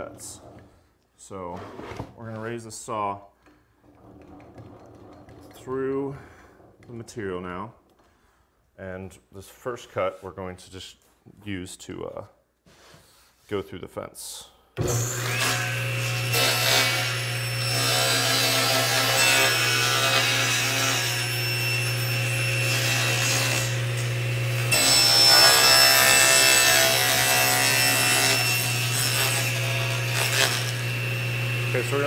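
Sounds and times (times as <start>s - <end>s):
table saw cutting wood: 14.8s - 32.0s.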